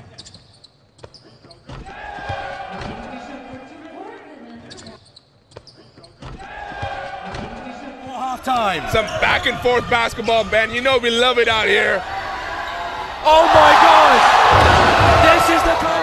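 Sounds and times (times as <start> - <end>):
voices in a hall: 1.2 - 16.0.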